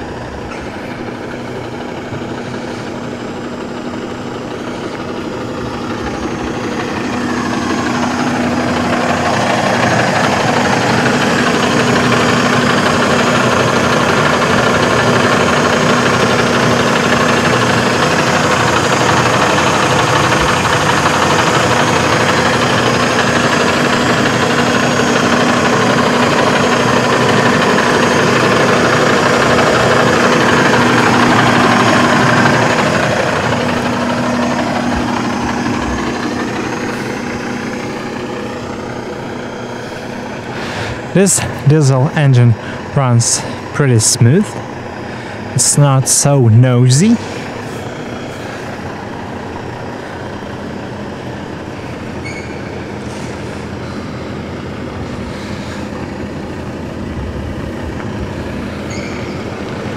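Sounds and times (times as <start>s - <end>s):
diesel truck engine idling: 0.0s - 59.9s.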